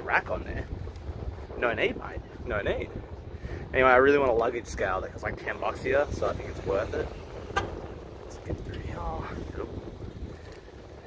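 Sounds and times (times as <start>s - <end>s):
bicycle rolling low rumble: 0.0s - 11.0s
wind buffeting microphone: 0.0s - 11.0s.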